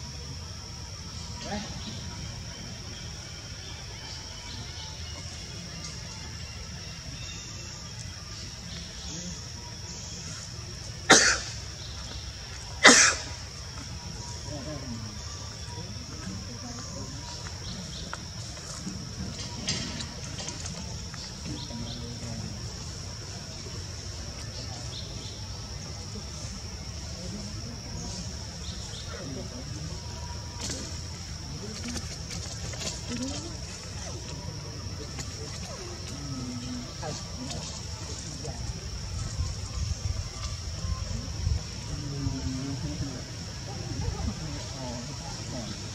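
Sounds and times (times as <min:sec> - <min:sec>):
faint voices: 0:00.0 - 0:45.9
cough-like bursts: 0:11.1 - 0:11.6, 0:12.8 - 0:13.3.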